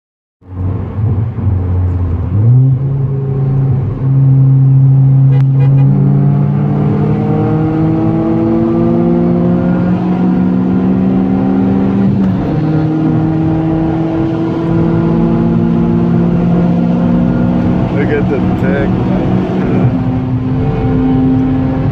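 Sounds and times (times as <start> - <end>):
car engine accelerating: 0.4 - 21.9
wind and road noise: 0.4 - 21.9.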